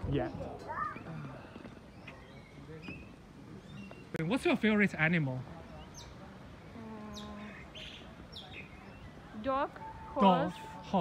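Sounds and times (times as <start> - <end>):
small birds chirping: 0.6 - 11.0.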